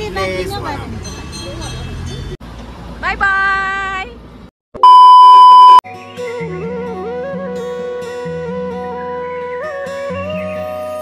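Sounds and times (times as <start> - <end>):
loud electronic beep: 4.8 - 5.8
music with plucked strings and flute: 5.9 - 11.0.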